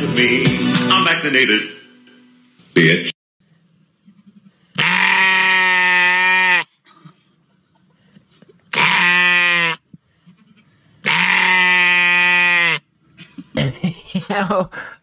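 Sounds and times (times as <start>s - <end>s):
sheep bleating loudly: 4.8s - 6.7s, 8.7s - 9.8s, 11.0s - 12.8s.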